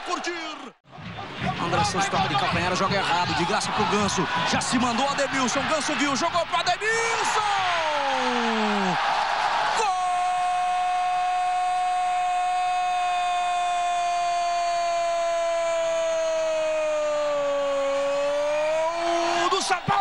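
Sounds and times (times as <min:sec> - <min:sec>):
loud crowd noise: 0:00.0 - 0:20.0
commentator's long goal shout: 0:01.8 - 0:09.0, 0:09.7 - 0:20.0.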